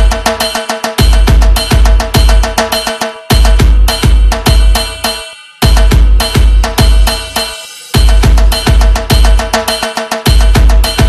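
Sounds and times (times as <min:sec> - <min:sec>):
heavy kick drum: 0:00.0 - 0:11.0
quick percussion hits: 0:00.0 - 0:11.0.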